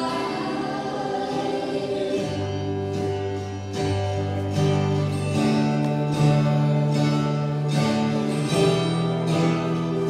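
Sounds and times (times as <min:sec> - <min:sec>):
group of singers: 0:00.0 - 0:04.9, 0:05.6 - 0:10.0
worship band playing slow song: 0:00.0 - 0:10.0.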